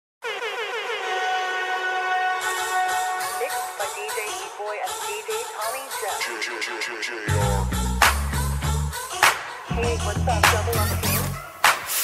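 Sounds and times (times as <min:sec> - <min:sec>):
synthesized horn-like tone: 0:00.2 - 0:05.4.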